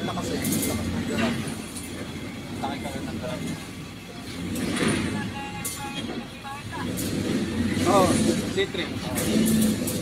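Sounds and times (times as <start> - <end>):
people talking indistinctly: 0.0 - 9.8
truck engine rumbling: 0.0 - 10.0.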